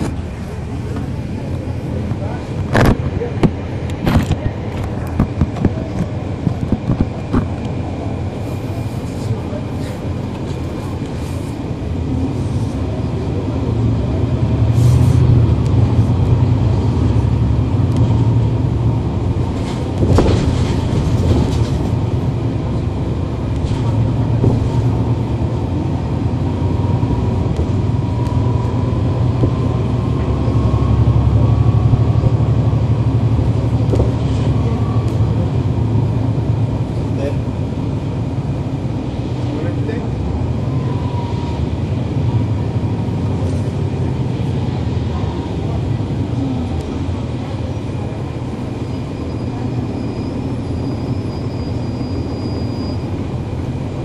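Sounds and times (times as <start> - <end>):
bus engine rumble: 0.0 - 54.0.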